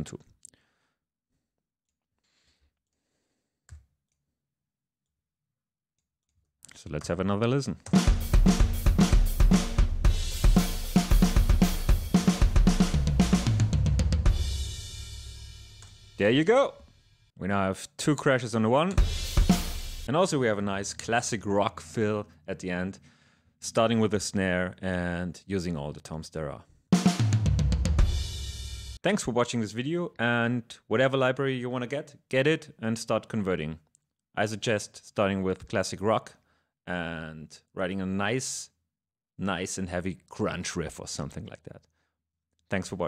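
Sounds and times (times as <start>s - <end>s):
drum fill down the toms: 7.9s - 15.4s, 19.0s - 20.1s, 27.0s - 29.0s
rock drum groove: 7.9s - 16.4s, 18.9s - 20.1s, 26.9s - 29.0s
kick drum: 19.0s - 19.8s
snare and tom hits: 19.0s - 20.1s.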